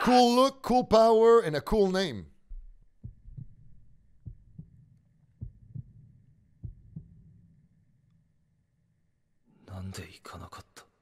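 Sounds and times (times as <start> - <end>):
heartbeat thumps: 2.4 - 7.4.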